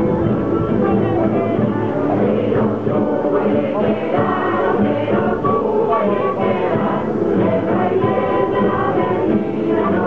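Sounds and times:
plucked string instruments: 0:00.0 - 0:10.0
strummed guitars: 0:00.0 - 0:10.0
group of voices singing: 0:00.6 - 0:10.0
flute: 0:05.1 - 0:07.1.

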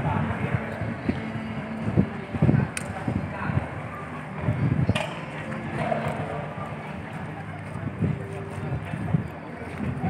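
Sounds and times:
low background murmur: 0:00.0 - 0:10.0
people talking indistinctly: 0:00.0 - 0:10.0.

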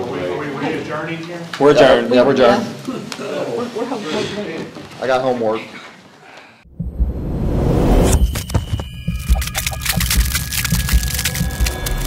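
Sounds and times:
deep bass pulses: 0:06.7 - 0:12.0
brief high ringing tones: 0:07.7 - 0:10.1
rapid sharp clicks: 0:09.1 - 0:12.0.

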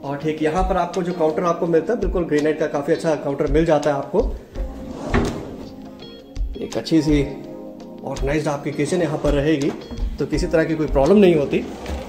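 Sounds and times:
drawer sliding open on runners: 0:04.7 - 0:05.8, 0:11.6 - 0:12.0
drawer knock: 0:04.8 - 0:05.7.

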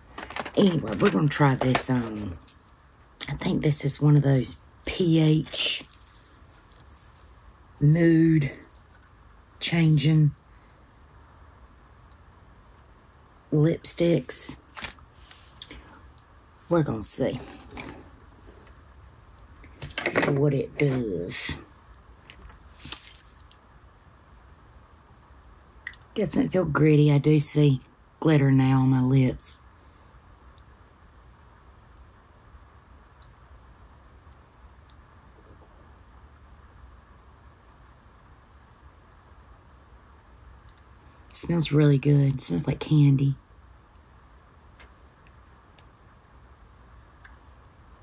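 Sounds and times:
faint handling clicks and rustles: 0:00.0 - 0:03.4, 0:04.7 - 0:07.5, 0:08.5 - 0:09.6, 0:14.6 - 0:23.8
faint small clicks: 0:33.1 - 0:33.6, 0:40.6 - 0:40.9.

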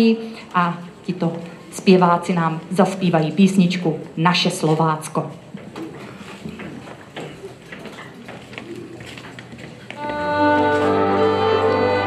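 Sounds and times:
folk band with strings and cimbalom: 0:09.9 - 0:12.0.

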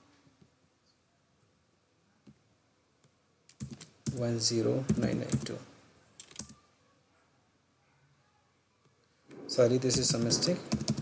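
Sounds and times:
computer keyboard key clicks: 0:03.5 - 0:04.2.

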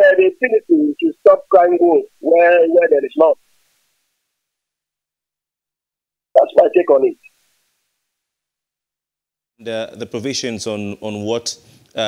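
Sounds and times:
man speaking over phone line: 0:00.0 - 0:03.4, 0:06.4 - 0:07.2.

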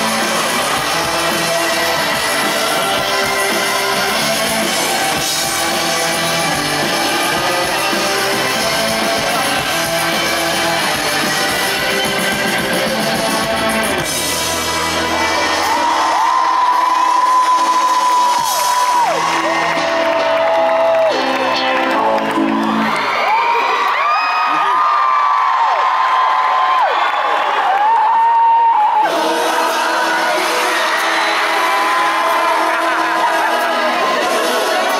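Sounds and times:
live rock band playing: 0:00.0 - 0:23.2, 0:29.1 - 0:34.9
crowd cheering: 0:00.0 - 0:34.9
fans screaming: 0:00.0 - 0:34.9.

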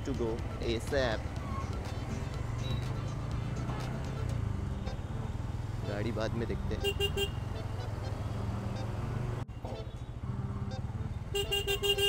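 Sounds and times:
motorcycle engine low rumble: 0:00.0 - 0:12.0.

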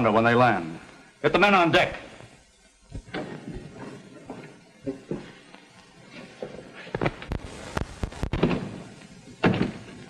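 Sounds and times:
film soundtrack hiss: 0:00.0 - 0:10.0.

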